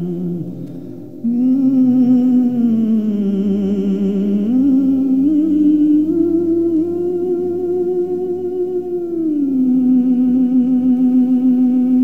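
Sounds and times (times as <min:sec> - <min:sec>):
hummed vocal with vibrato: 0:00.0 - 0:12.0.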